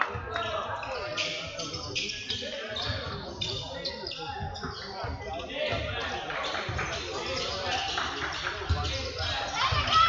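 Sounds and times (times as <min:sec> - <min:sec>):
voices in a hall: 0:00.0 - 0:10.0.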